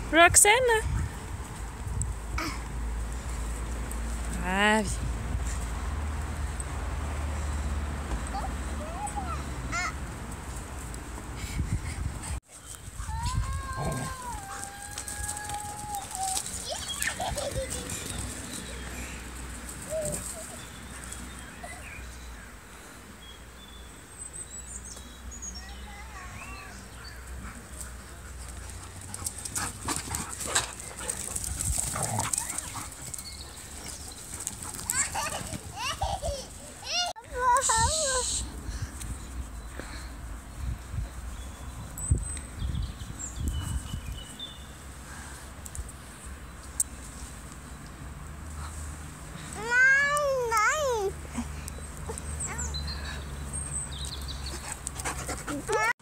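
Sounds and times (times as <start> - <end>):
young dog whining: 13.6 - 16.4.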